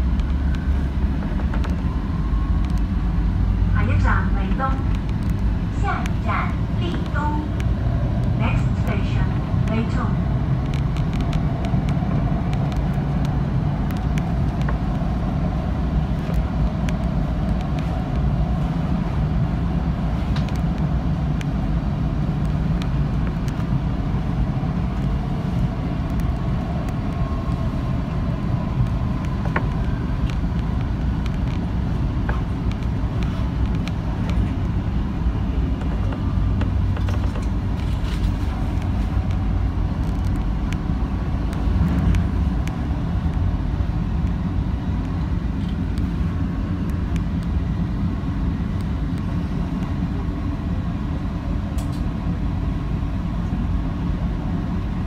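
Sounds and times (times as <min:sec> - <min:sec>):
faint train whine: 0:00.0 - 0:55.0
train wheels rumbling on rail: 0:00.0 - 0:55.0.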